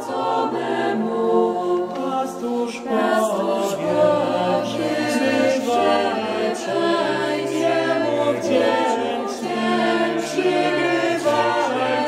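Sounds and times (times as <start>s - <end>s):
choir singing a cappella: 0.0s - 12.0s.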